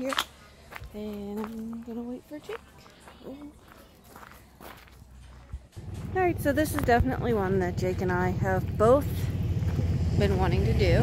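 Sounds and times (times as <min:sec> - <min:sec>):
footsteps on gravel: 0:00.0 - 0:10.9.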